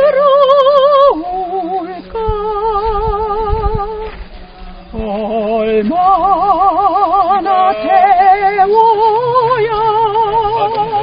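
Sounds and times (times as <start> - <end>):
woman singing a hymn with vibrato: 0.0 - 4.3, 4.9 - 11.0.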